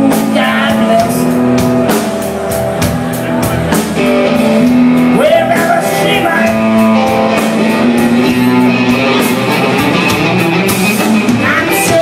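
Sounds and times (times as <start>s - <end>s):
bass guitar: 0.0s - 12.0s
electric guitar held notes: 0.0s - 12.0s.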